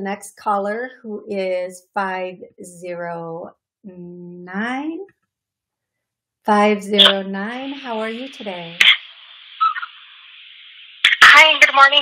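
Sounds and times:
telephone line hiss: 7.0s - 12.0s.

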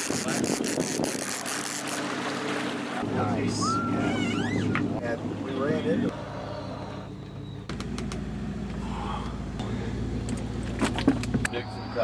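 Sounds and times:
boat engine humming: 1.1s - 12.0s.

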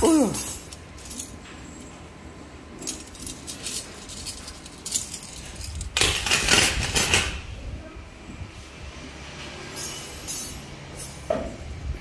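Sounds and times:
metal bangles clinking: 0.0s - 2.0s, 2.8s - 7.3s, 9.7s - 11.3s.

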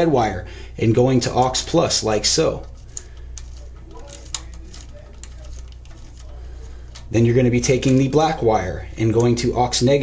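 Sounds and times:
steady low hum: 0.0s - 10.0s
screwdriver clicking and scraping: 2.6s - 7.1s.

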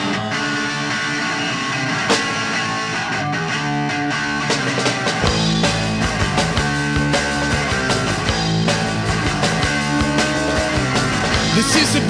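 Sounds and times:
bass and drums: 0.0s - 12.0s
electric guitar: 0.0s - 12.0s.

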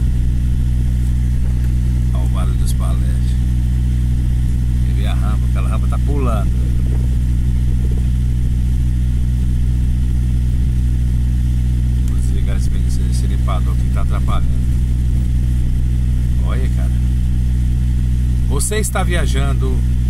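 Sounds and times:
engine idling: 0.0s - 20.0s.

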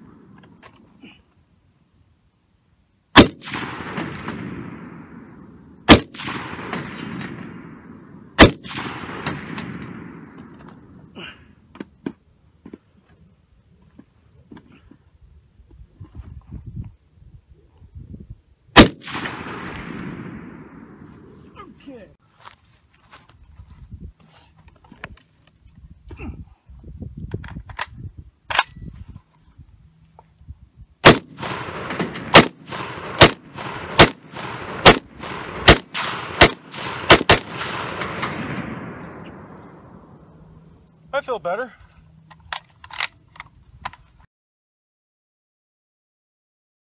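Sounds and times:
rifle shots with echo: 3.1s - 11.1s, 18.7s - 21.4s, 31.0s - 40.4s
rifle handling clicks: 27.3s - 28.8s, 42.2s - 44.0s.

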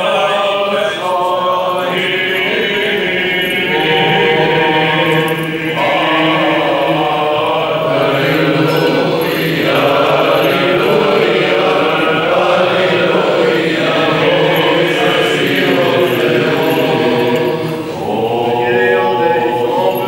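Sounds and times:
men singing chant together: 0.0s - 20.0s.

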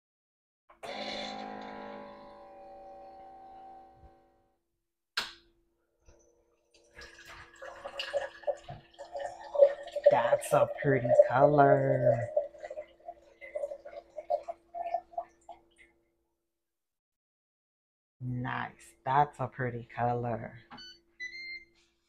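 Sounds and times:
drink pouring into glass: 6.7s - 15.6s.

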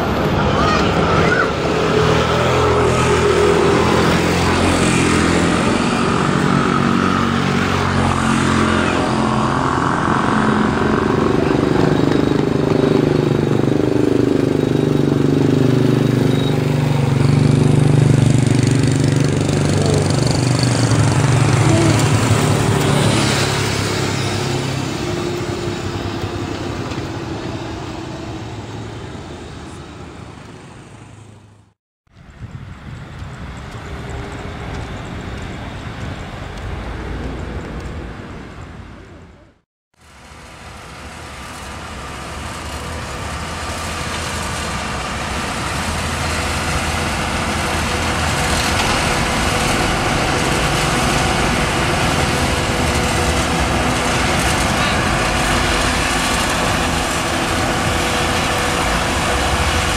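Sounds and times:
vehicle engine passing: 0.0s - 31.6s, 41.6s - 59.9s.

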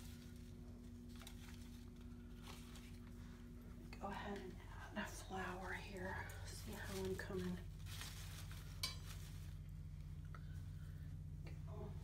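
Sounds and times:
artificial flowers rustling: 0.0s - 12.0s.

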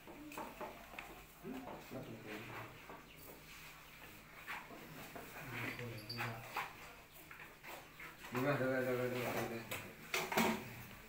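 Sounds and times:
small room sounds: 0.0s - 11.0s.

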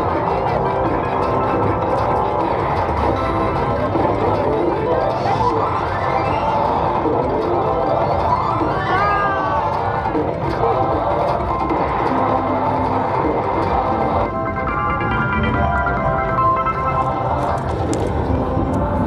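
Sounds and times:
casino chatter: 0.0s - 19.0s
slot machine bonus music: 14.3s - 17.4s.

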